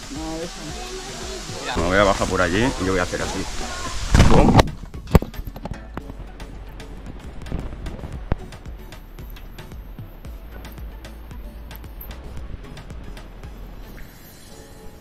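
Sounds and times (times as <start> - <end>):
microphone rubbing rush: 3.4 - 6.3, 7.0 - 8.8.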